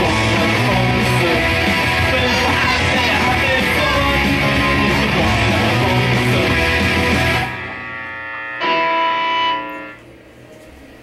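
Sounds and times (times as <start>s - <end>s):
electric guitar chord ringing: 0.0s - 10.3s.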